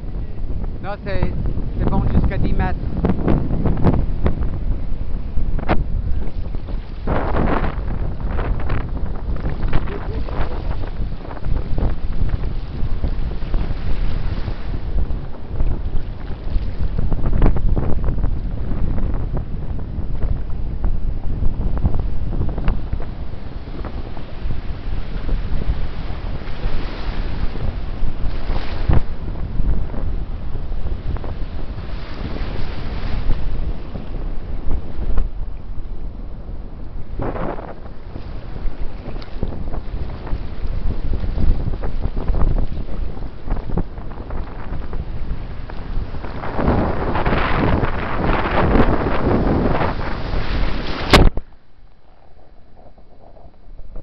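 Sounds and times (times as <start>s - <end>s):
surf breaking and churning: 0.0s - 54.0s
wind buffeting microphone: 0.0s - 54.0s.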